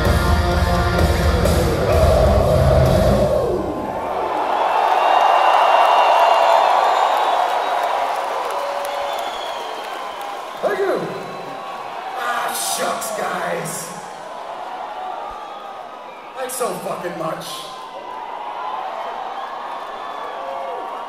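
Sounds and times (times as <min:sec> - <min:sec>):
heavy metal band playing: 0:00.0 - 0:03.9
large crowd cheering: 0:00.0 - 0:21.0.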